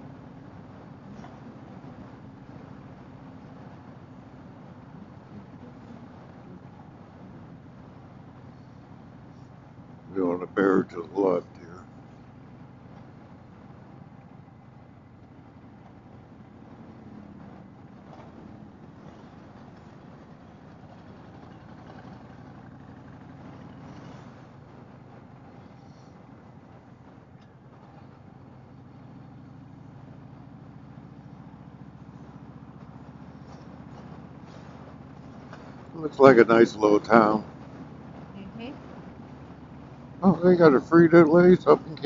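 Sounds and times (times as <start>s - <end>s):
motorcycle engine running: 0.0s - 42.0s
road and wind noise: 0.0s - 42.0s.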